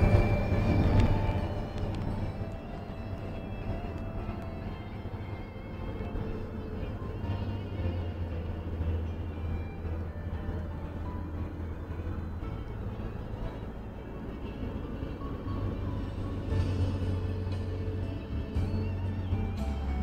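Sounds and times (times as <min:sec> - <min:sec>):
car engine rumble: 0:00.0 - 0:20.0
faint music: 0:00.0 - 0:20.0
road noise inside cabin: 0:00.0 - 0:20.0.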